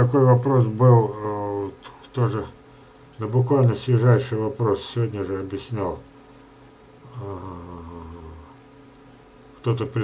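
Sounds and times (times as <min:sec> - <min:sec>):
man humming mmm: 0:07.0 - 0:08.6.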